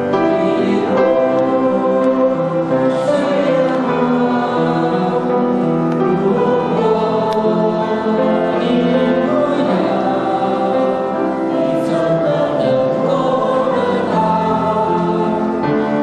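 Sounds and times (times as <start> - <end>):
congregation singing a worship song: 0.0 - 16.0.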